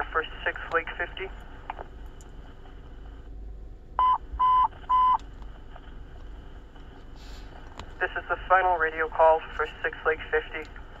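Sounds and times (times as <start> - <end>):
radio alert beeps: 4.0 - 5.2
radio channel hiss: 7.2 - 10.6.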